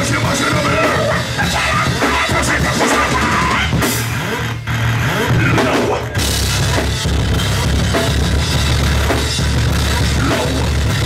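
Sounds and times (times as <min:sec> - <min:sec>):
metal band playing distorted guitars: 0:00.0 - 0:11.0.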